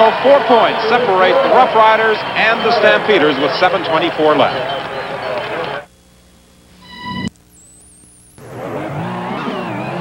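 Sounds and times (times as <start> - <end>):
television broadcast voices: 0.0 - 8.8.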